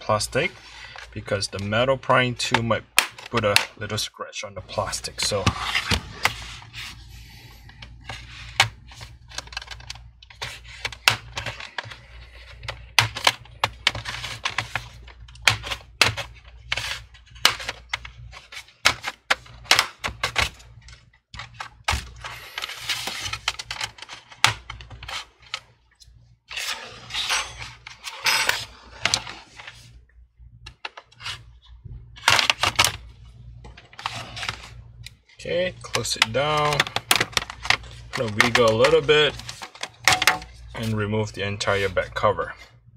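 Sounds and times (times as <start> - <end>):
plastic scraping: 35.4 - 41.0.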